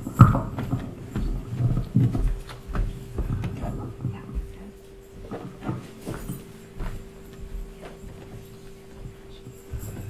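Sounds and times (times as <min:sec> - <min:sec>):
heavy footsteps: 0:00.0 - 0:10.0.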